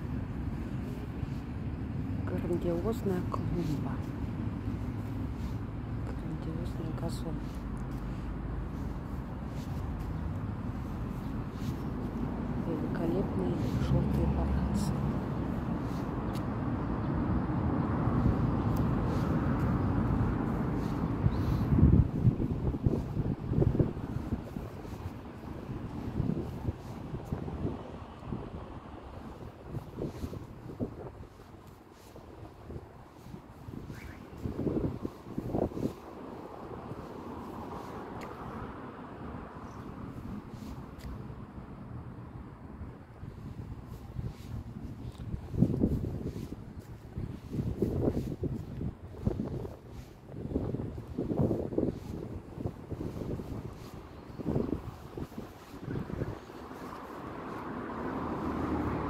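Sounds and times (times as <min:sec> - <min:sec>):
low outdoor rumble: 0:00.0 - 0:59.0
wind buffeting microphone: 0:00.0 - 0:59.0.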